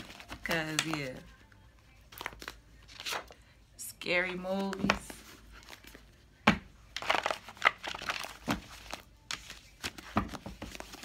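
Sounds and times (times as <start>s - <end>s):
paper cards rustling and flicking: 0.0s - 1.3s, 6.9s - 11.0s.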